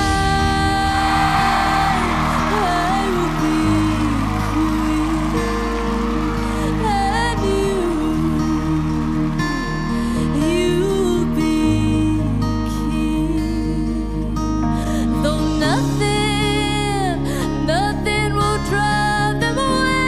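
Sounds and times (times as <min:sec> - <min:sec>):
person singing a slow ballad: 0:00.0 - 0:20.0
strummed acoustic guitar: 0:00.0 - 0:20.0.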